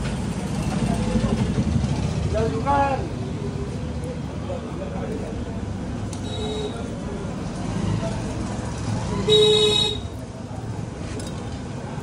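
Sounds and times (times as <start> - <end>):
low rumble of traffic: 0.0 - 12.0
people talking: 0.3 - 11.4.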